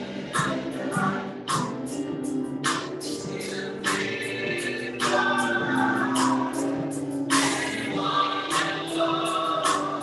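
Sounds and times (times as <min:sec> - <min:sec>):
church choir singing: 0:03.1 - 0:10.0.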